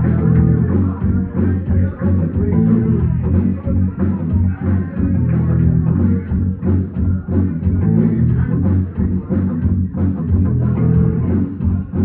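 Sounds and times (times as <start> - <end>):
drum kit: 0.0 - 12.0
electric bass guitar: 0.0 - 12.0
electric guitar: 0.0 - 12.0.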